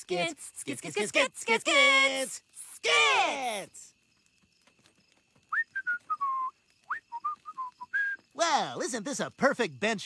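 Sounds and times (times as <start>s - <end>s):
man whistling a tune: 5.5s - 8.2s.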